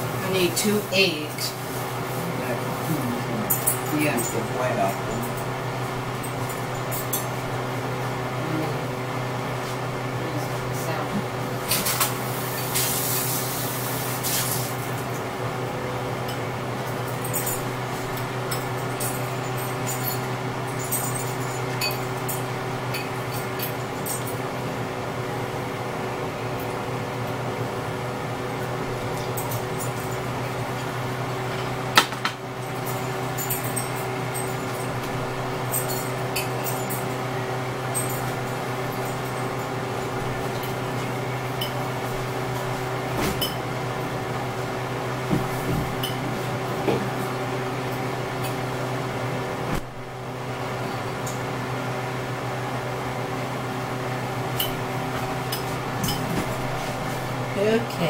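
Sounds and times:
mechanical appliance hum: 0.0 - 58.0
dishes and glassware clinking: 43.2 - 43.6, 55.5 - 56.6.

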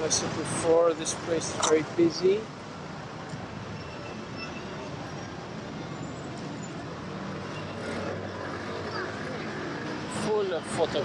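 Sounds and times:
city traffic hum: 0.0 - 11.0.

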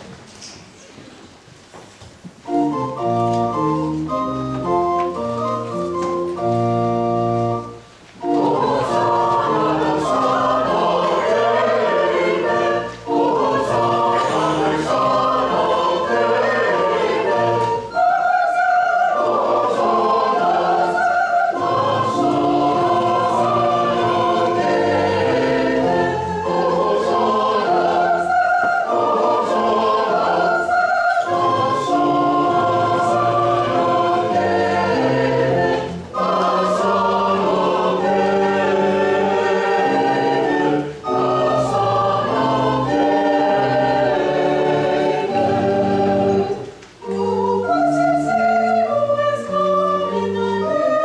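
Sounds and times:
church choir singing: 2.5 - 51.0.

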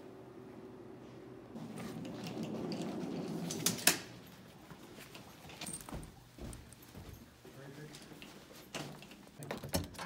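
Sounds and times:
suitcase wheels rumbling on floor: 1.6 - 9.1.

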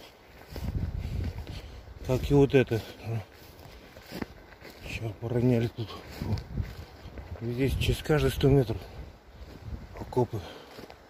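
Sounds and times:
brushing through undergrowth: 0.0 - 11.0
footsteps in undergrowth: 0.0 - 11.0.

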